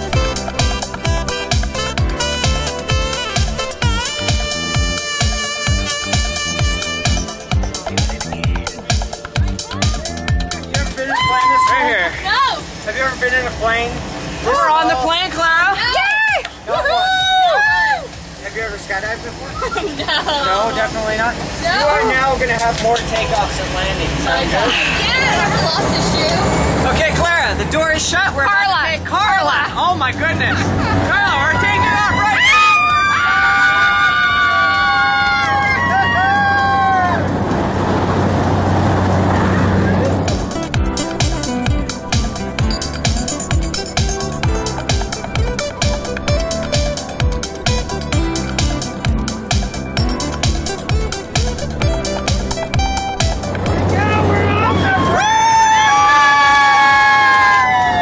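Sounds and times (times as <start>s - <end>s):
electronic dance music: 0.0s - 11.6s, 39.3s - 55.1s
plane engine rumble: 35.2s - 55.2s.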